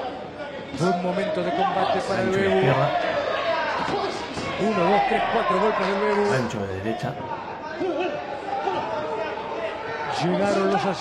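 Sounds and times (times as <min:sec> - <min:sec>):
crowd chatter in an arena: 0:00.0 - 0:11.0.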